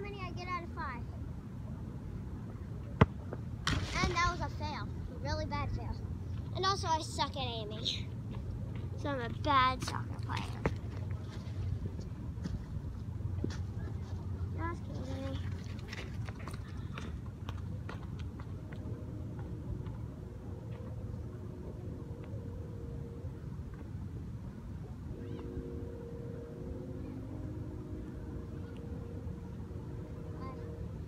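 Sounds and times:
low hum: 0.0 - 31.0.

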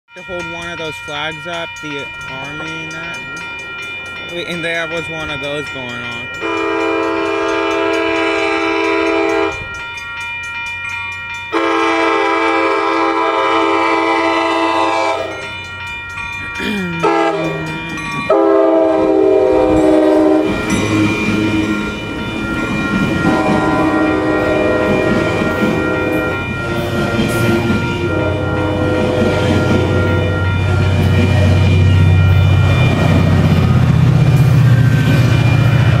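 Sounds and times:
train cars rumbling past: 0.1 - 36.0
train horn blasts: 6.4 - 9.6, 11.5 - 15.4, 17.0 - 21.8, 23.2 - 30.7.

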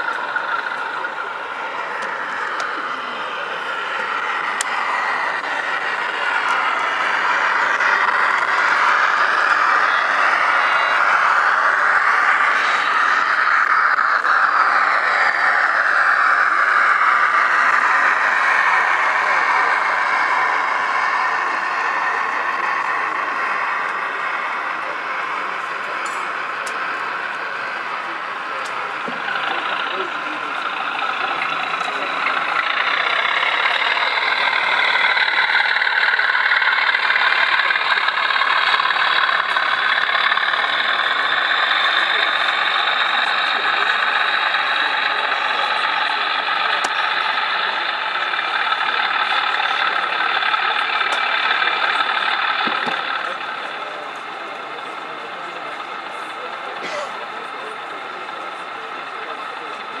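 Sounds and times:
diesel engine sound through small speaker: 0.0 - 60.0.

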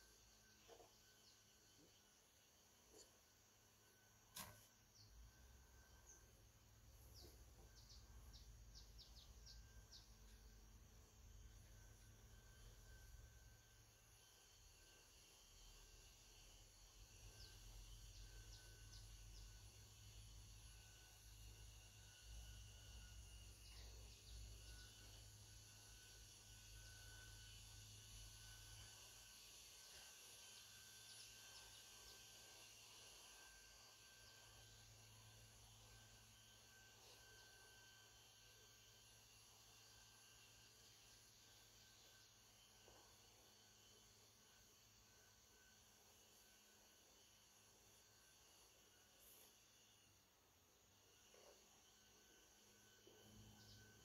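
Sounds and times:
faint insect sounds: 0.0 - 54.0
faint bird sounds: 4.4 - 13.1.

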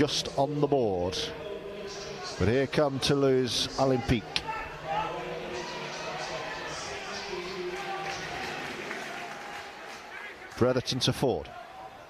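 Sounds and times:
stadium crowd noise: 0.0 - 12.0
crowd applause: 4.8 - 12.0.

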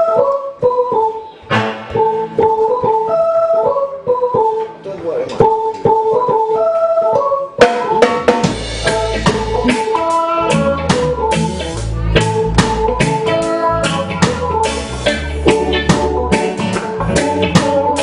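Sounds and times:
keyboard organ riff: 0.0 - 18.0
drum kit: 1.4 - 3.0, 7.6 - 18.0
bass guitar: 7.6 - 18.0.

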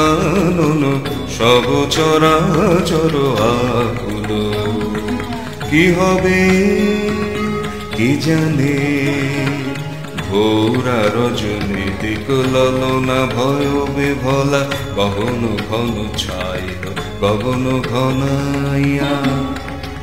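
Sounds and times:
instrumental accompaniment: 0.0 - 20.0
person singing: 0.0 - 20.0.

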